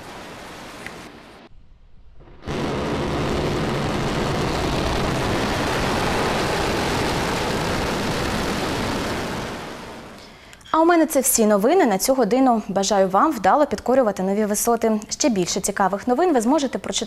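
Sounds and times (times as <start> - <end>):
explosion blast: 1.5 - 10.4
roar and rumble of fireball: 1.6 - 10.2.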